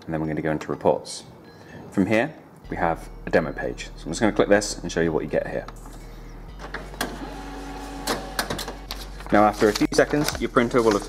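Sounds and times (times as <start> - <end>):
printer motors whining: 6.6 - 9.0
printer click: 8.0 - 8.9.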